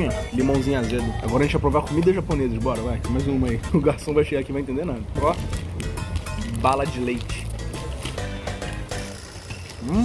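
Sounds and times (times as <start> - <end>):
background music with bass: 0.0 - 10.0
man humming: 9.8 - 10.0.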